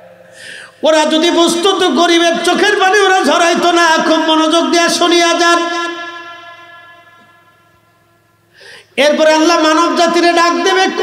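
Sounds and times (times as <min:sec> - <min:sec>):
faint steady hum: 0:00.0 - 0:11.0
man chanting over loudspeaker: 0:00.8 - 0:07.4, 0:09.0 - 0:11.0.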